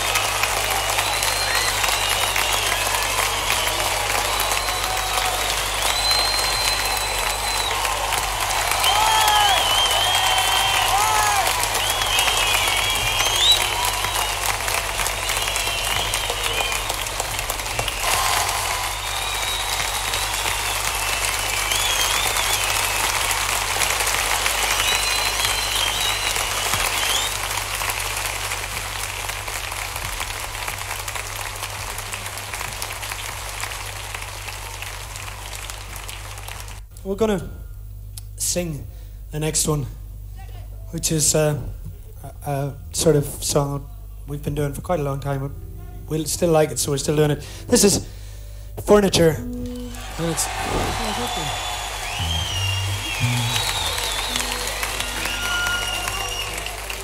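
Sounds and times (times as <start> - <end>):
audience applauding and cheering: 0.0 - 36.9, 49.2 - 57.0
people calling out: 49.9 - 57.0.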